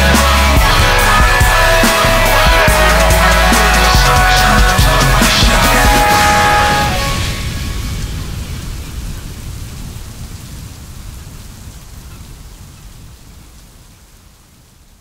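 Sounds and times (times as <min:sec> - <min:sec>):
low rumble: 0:00.0 - 0:12.0
rain-like hiss: 0:00.0 - 0:15.0.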